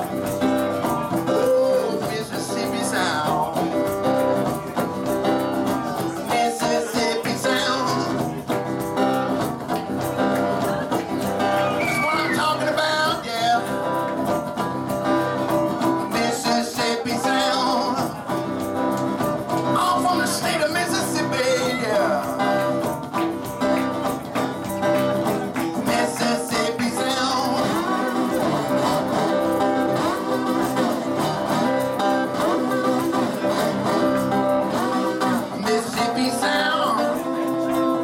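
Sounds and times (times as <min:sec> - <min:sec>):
blues electric guitar: 0:00.0 - 0:38.0.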